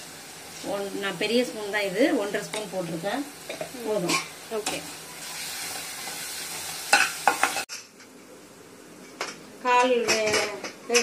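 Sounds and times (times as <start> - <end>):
vegetables sizzling in a pan: 0.0 - 7.9
metal spoon scraping a pan: 3.4 - 7.9.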